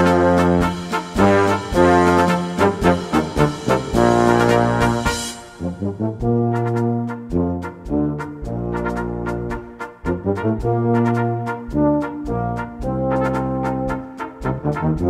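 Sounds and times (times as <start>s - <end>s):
percussion strokes: 0.0s - 9.0s
brass band playing: 0.0s - 15.0s.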